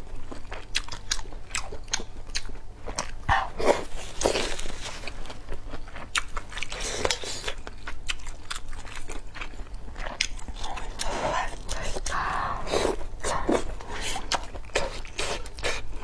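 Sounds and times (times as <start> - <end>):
person chewing food: 0.0 - 16.0.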